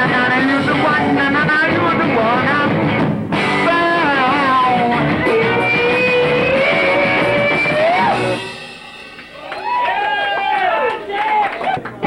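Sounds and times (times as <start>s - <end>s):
man singing: 0.0s - 2.8s, 3.6s - 7.8s
electric guitars: 0.0s - 9.9s
drums: 0.0s - 12.0s.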